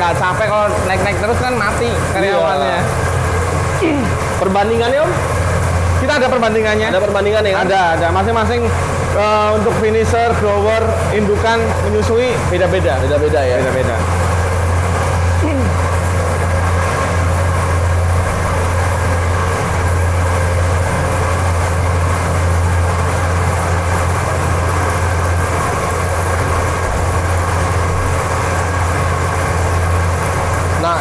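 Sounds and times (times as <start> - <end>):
feed mixer humming: 0.0 - 31.0.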